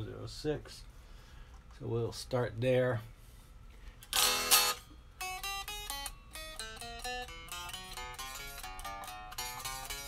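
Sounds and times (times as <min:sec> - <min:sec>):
electric guitar chord strummed: 0:04.1 - 0:10.0.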